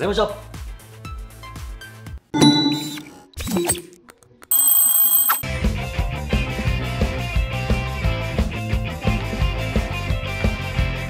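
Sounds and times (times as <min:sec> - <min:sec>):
notification bell ringing: 0:02.4 - 0:03.2, 0:04.5 - 0:05.4
sound effect stings: 0:02.4 - 0:03.9
background music: 0:05.5 - 0:11.0.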